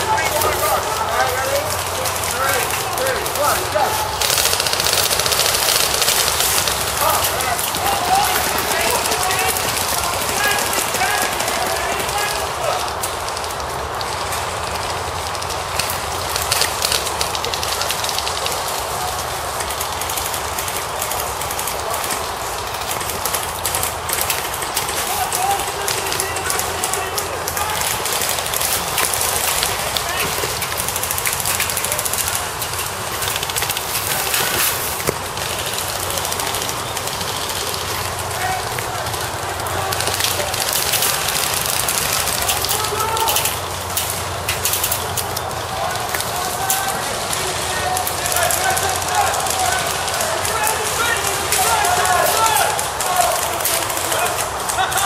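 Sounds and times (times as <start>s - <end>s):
airsoft guns firing: 0.0s - 14.8s, 15.5s - 55.0s
players shouting: 0.0s - 55.0s.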